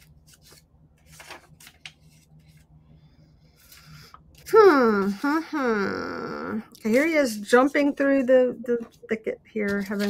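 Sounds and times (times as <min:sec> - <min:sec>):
paper and cardboard rustling: 0:00.0 - 0:02.7, 0:08.8 - 0:10.0
low steady hum: 0:00.0 - 0:10.0.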